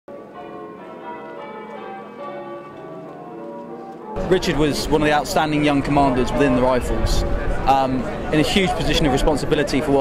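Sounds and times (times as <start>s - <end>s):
church bells ringing: 0.1s - 10.0s.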